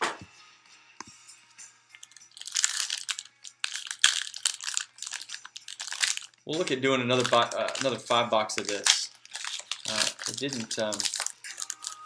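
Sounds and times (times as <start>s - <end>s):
plastic wrapper crinkling: 2.0s - 12.0s.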